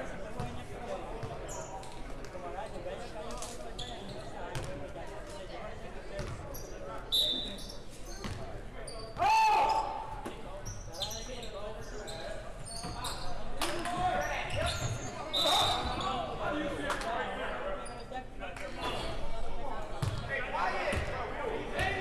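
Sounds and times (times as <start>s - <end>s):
voices of players and spectators: 0.0s - 22.0s
sneakers squeaking: 1.2s - 2.0s, 3.7s - 4.8s, 6.2s - 16.4s, 20.0s - 20.3s
loud shout: 9.2s - 10.1s.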